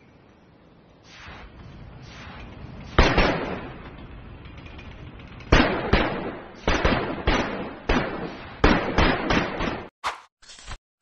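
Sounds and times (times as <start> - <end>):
fireworks bangs: 1.1 - 4.2, 5.4 - 9.9.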